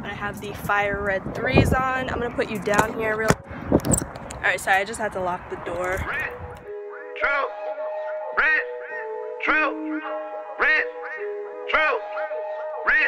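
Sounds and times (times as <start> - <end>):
background music with held chords: 6.4 - 13.0.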